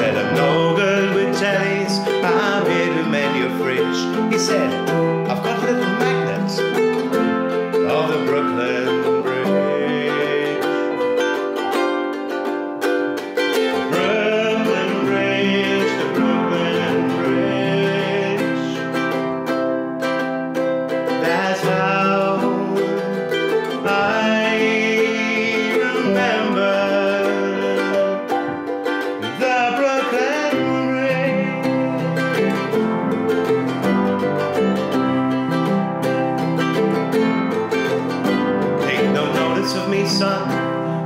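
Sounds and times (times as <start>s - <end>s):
man singing: 0.0s - 11.7s, 13.5s - 19.4s, 21.1s - 33.9s, 37.8s - 41.0s
ukulele strumming: 0.0s - 41.0s
upright piano playing: 0.0s - 41.0s.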